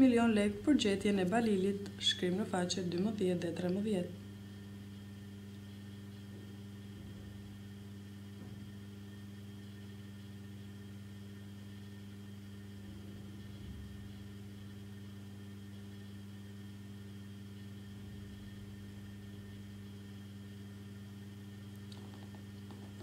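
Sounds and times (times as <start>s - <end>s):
faint electrical hum: 0.0s - 23.0s.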